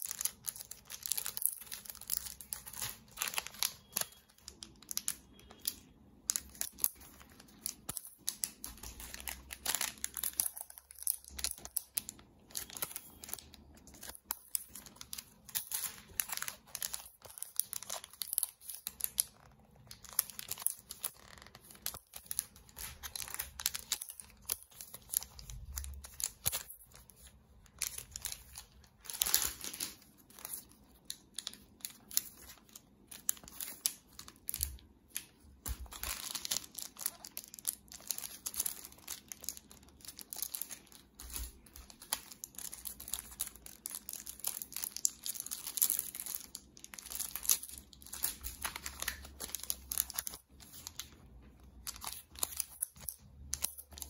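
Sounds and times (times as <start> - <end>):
plastic bags crinkling: 0.0 - 54.0.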